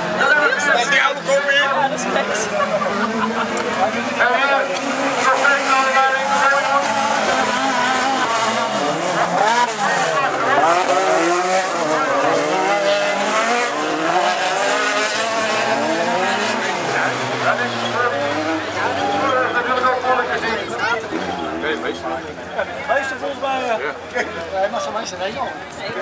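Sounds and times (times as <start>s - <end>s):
car engines revving hard: 0.0s - 26.0s.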